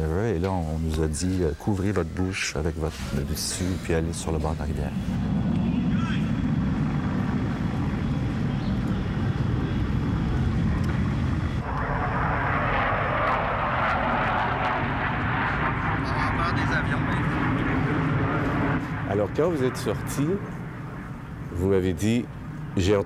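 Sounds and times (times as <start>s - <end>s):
aircraft flying over: 2.4s - 23.0s.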